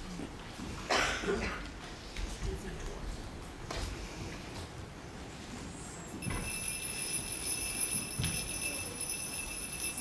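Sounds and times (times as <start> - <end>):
sleigh bells jingling: 6.2 - 10.0.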